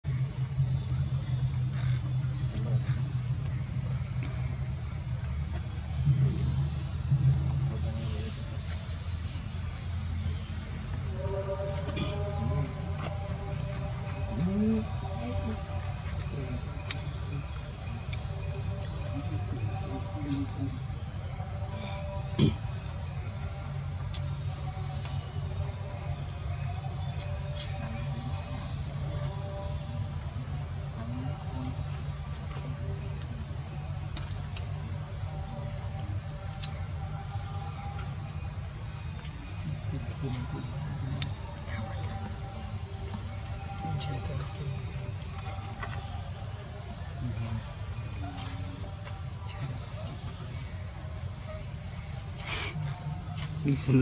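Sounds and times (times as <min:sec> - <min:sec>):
insect chorus buzzing: 0:00.0 - 0:54.0.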